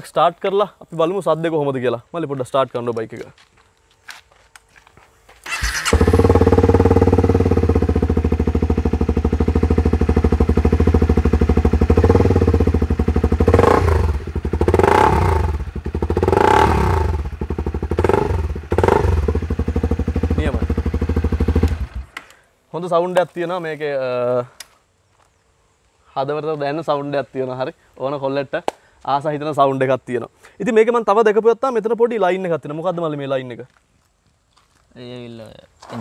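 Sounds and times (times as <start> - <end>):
motorcycle engine idling and revving: 5.5 - 22.2.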